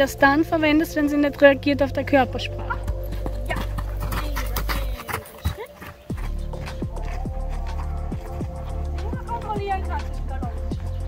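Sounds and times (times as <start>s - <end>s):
background music: 0.0s - 11.0s
horse hoofbeats on sand: 2.3s - 11.0s.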